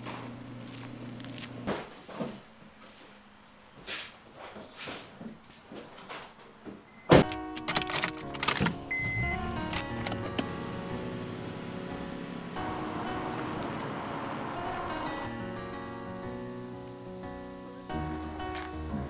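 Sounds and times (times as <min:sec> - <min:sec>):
car engine starting and running: 0:07.2 - 0:16.0.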